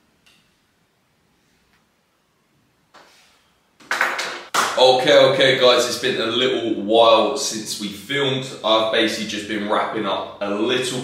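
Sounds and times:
man's voice: 4.8 - 11.0.

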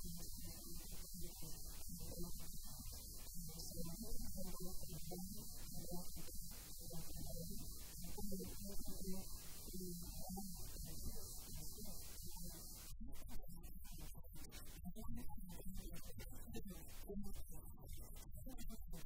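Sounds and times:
steady electrical hum: 0.0 - 12.9
muffled garbled woman's voice: 0.0 - 19.0.

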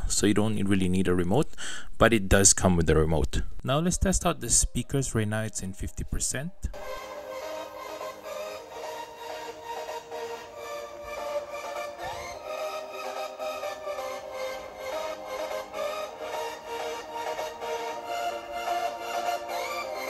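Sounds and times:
electronic dance music on small speakers: 6.8 - 20.0.

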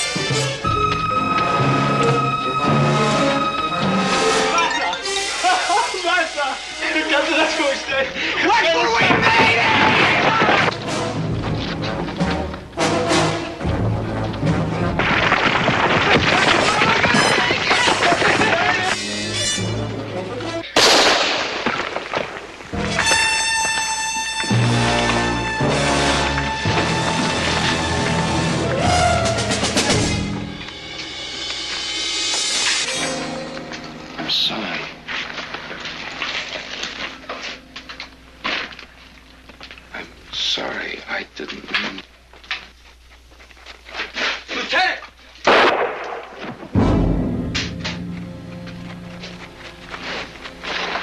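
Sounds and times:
dramatic orchestral music with brass: 0.0 - 8.2, 10.6 - 15.0, 22.7 - 31.2, 46.8 - 51.0
scuffling: 8.5 - 12.8, 33.6 - 39.9, 41.4 - 45.4, 47.6 - 51.0
sharp crack: 20.7 - 25.2, 45.4 - 48.8
repeated impacts: 45.4 - 51.0.

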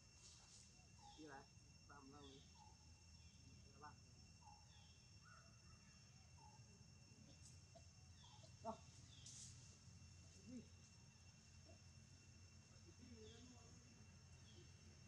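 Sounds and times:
high insect drone: 0.0 - 15.0.

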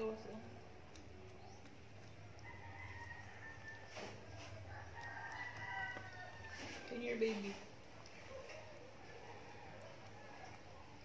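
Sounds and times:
rooster crowing: 2.3 - 7.2, 9.0 - 10.8.

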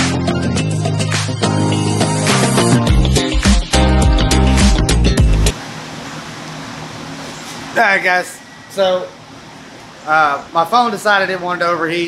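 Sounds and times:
background music: 0.0 - 5.6
air cooler fan running: 5.5 - 12.0.

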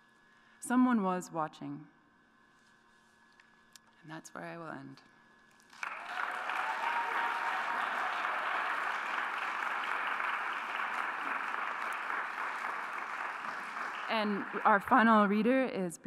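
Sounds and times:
audience applauding: 5.7 - 15.1.

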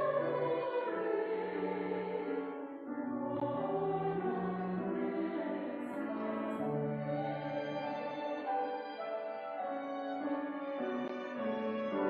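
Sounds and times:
choir singing: 0.0 - 12.0
string orchestra: 3.4 - 12.0.

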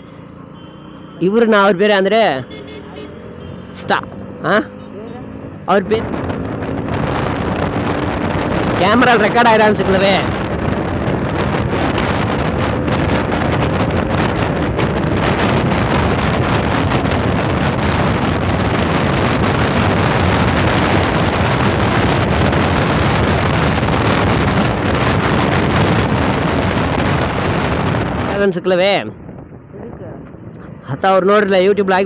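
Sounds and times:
motorcycle engine cruising: 0.0 - 32.0
wind rush on microphone: 5.2 - 32.0.

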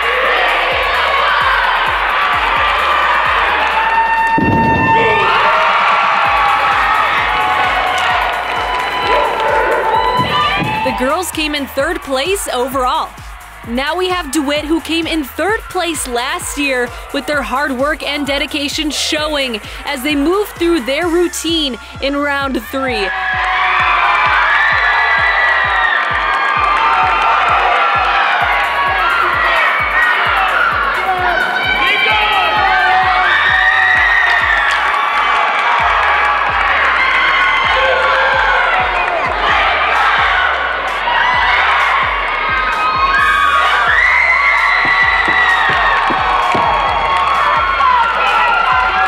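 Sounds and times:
girls yelling and cheering: 0.0 - 35.0, 35.8 - 49.0.

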